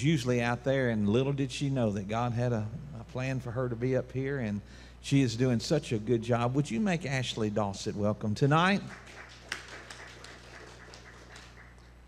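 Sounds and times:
people clapping: 0:08.6 - 0:12.0.

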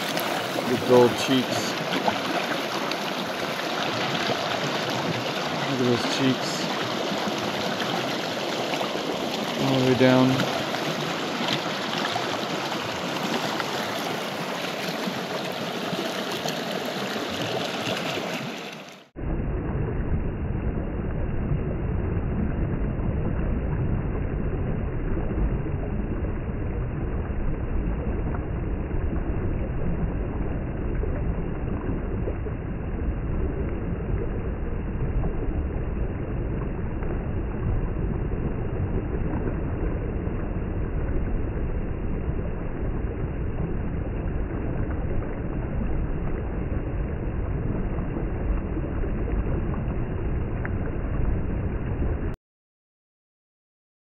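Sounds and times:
mountain stream running: 0:00.0 - 0:19.1.

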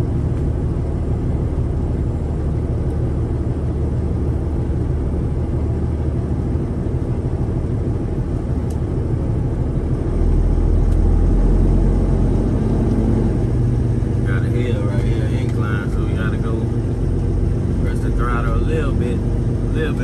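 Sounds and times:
diesel engine rumble: 0:00.0 - 0:20.0.

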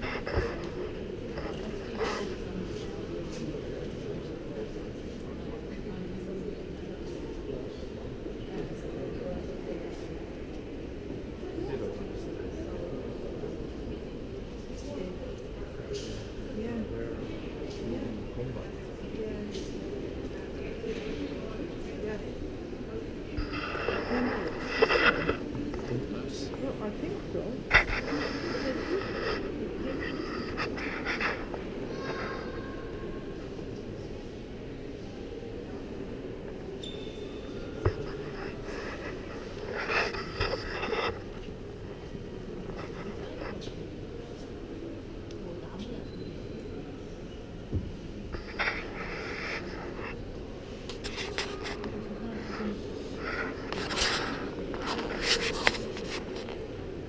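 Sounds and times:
indistinct chatter of voices: 0:00.0 - 0:57.0.

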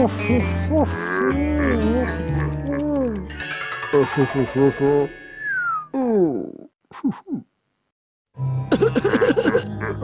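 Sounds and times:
cartoon soundtrack music: 0:00.0 - 0:06.0, 0:08.4 - 0:10.0.

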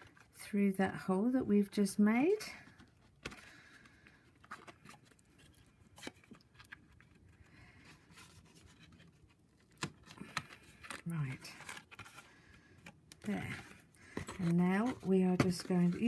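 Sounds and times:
cardstock rustling and scraping: 0:02.2 - 0:16.0.

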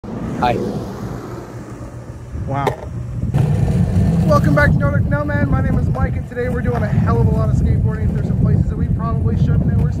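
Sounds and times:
skateboard wheels rolling on concrete: 0:00.1 - 0:10.0.

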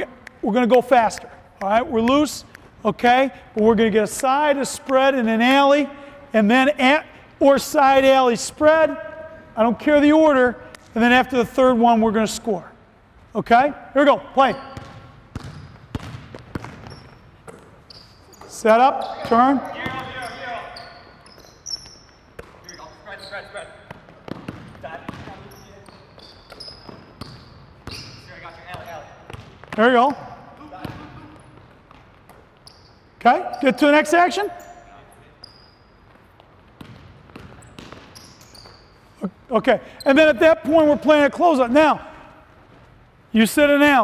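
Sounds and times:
sneaker squeaks: 0:14.4 - 0:40.7
basketball bouncing on hardwood floor: 0:14.7 - 0:17.7, 0:23.8 - 0:25.6, 0:28.7 - 0:32.4, 0:36.1 - 0:38.6.

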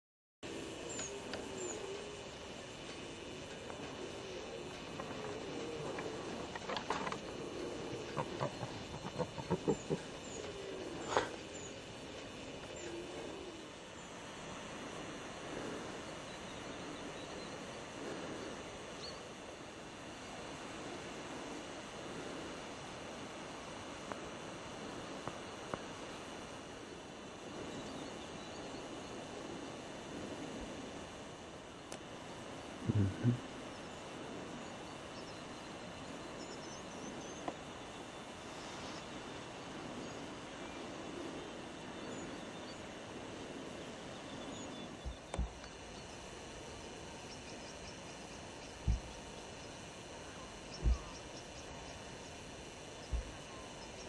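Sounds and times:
short animal calls: 0:04.9 - 0:11.5, 0:32.8 - 0:33.5.

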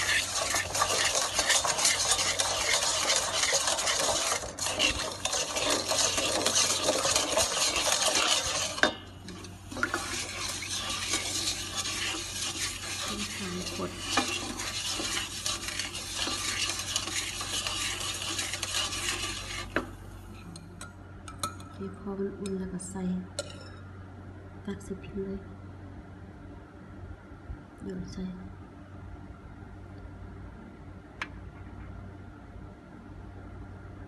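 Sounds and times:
spatula stirring in a pot: 0:00.0 - 0:20.7.

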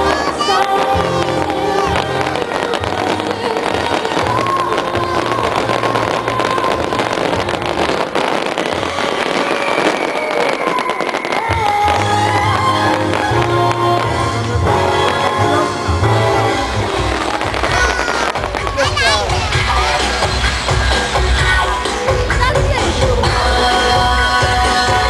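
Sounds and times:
music with steady bass line: 0:00.0 - 0:09.4, 0:11.6 - 0:25.0
fireworks crackling and popping: 0:00.0 - 0:25.0.

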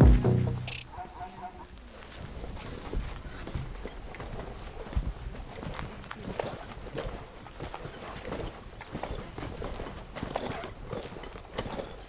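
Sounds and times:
footsteps on gravel and dirt: 0:01.7 - 0:12.0.

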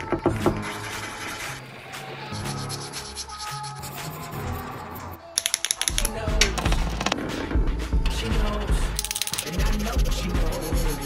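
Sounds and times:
marker scratching on paper: 0:00.6 - 0:01.7, 0:02.3 - 0:05.0, 0:09.4 - 0:11.0
sharp clicks: 0:05.4 - 0:07.2.

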